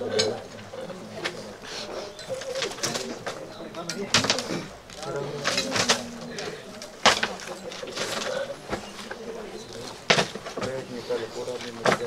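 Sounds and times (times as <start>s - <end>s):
bird cooing: 0.0s - 11.6s
low voices murmuring: 0.0s - 12.0s.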